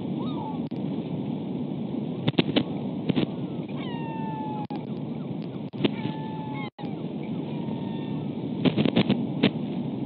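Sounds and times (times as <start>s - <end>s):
wind rush on microphone: 0.0s - 10.0s.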